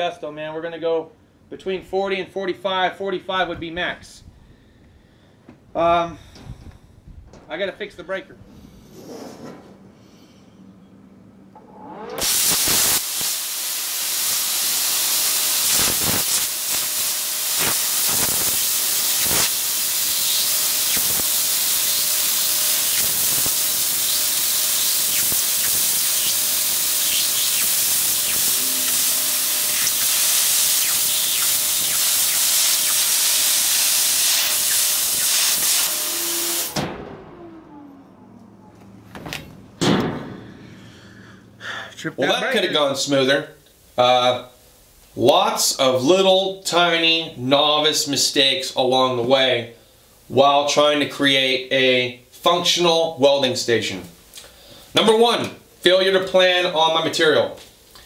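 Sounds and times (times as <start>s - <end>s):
short falling tone: 11.4s - 12.3s, 27.2s - 31.9s, 36.8s - 40.7s
plasma cutter hissing: 12.2s - 36.8s.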